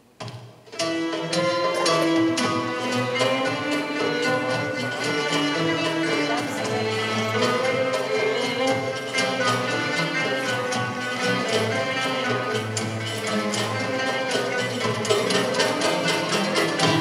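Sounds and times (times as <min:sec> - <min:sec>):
instrumental ensemble tango: 0:00.0 - 0:17.0.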